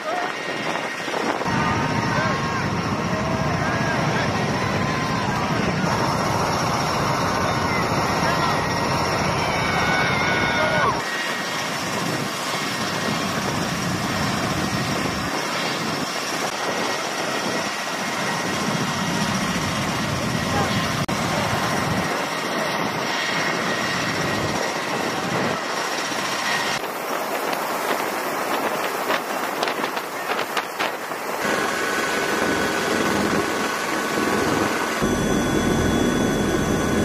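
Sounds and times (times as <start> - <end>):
aircraft engines and rotors: 0.0 - 37.0
faint high whine: 31.4 - 37.0.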